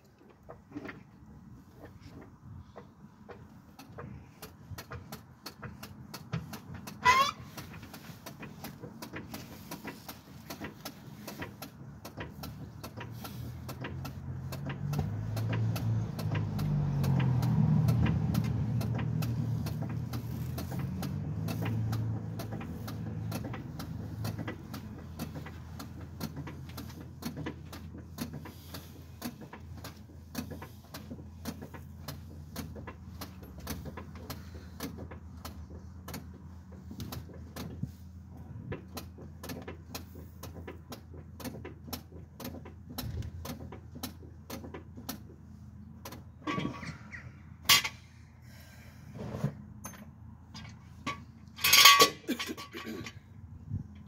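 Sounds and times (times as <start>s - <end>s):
hand tools clicking on metal: 2.8s - 37.8s
sharp squeak: 7.0s - 7.5s, 46.4s - 47.4s
passing vehicle rumble: 11.1s - 27.2s.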